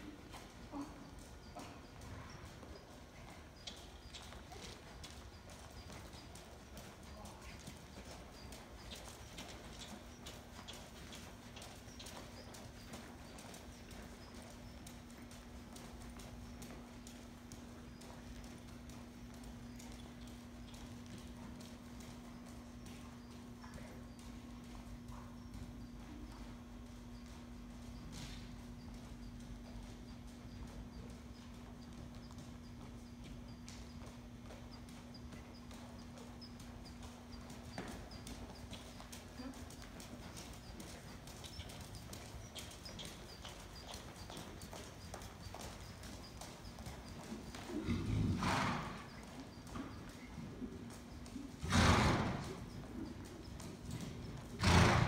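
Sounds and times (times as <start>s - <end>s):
horse hooves trotting on sand: 0.0s - 55.0s.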